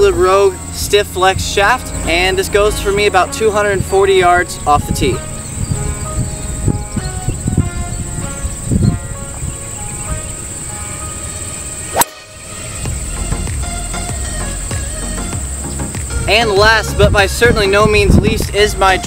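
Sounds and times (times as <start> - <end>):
background music: 0.0 - 19.0
high insect buzz: 5.2 - 17.0
golf club striking ball: 11.9 - 12.3.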